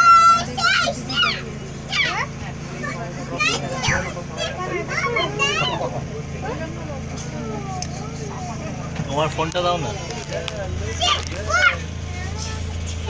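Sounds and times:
bus engine humming: 0:00.0 - 0:13.0
children chattering: 0:00.0 - 0:13.0.

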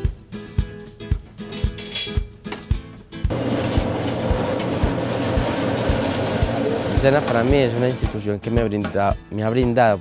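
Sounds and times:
soft background music beat: 0:00.0 - 0:10.0
coffee processing machine running: 0:03.3 - 0:08.2.

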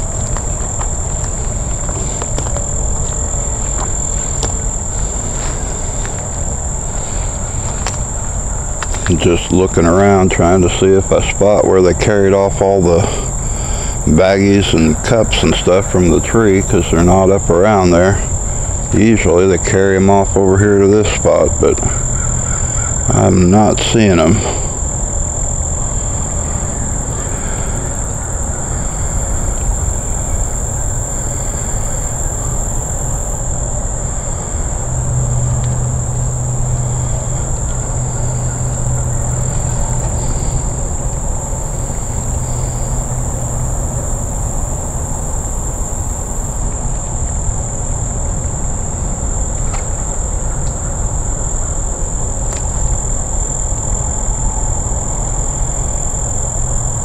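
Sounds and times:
high-pitched insect drone: 0:00.0 - 0:57.0
faint clicks: 0:52.5 - 0:52.8.

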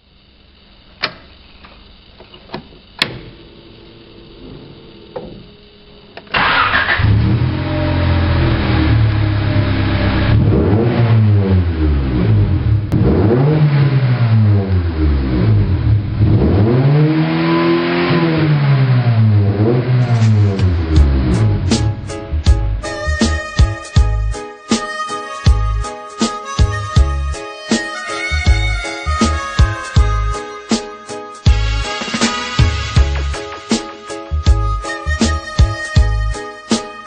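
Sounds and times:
music: 0:04.2 - 0:07.8, 0:20.0 - 0:37.0
car engine starting and revving: 0:06.3 - 0:22.9.

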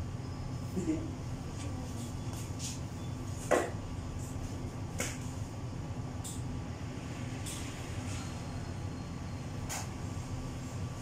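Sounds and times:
fans humming: 0:00.0 - 0:11.0.

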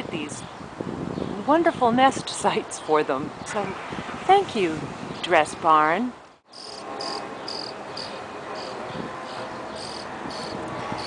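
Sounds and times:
steady background noise: 0:05.8 - 0:11.0
cricket chirping: 0:06.5 - 0:08.8.

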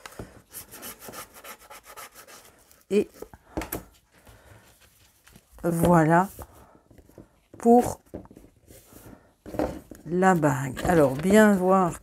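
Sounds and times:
cardboard rubbing and rustling: 0:07.6 - 0:12.0
paper scraping on paper: 0:10.2 - 0:12.0.

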